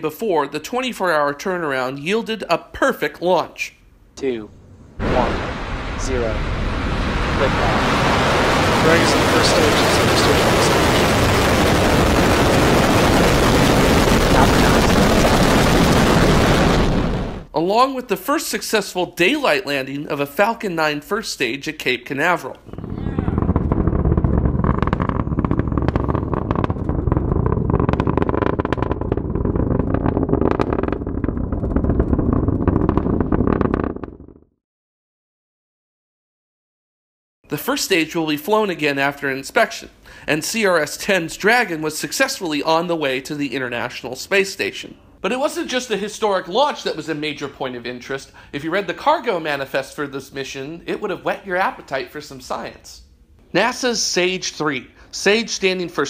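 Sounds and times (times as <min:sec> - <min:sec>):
rocket engines roaring: 0:04.2 - 0:17.5, 0:22.5 - 0:33.1.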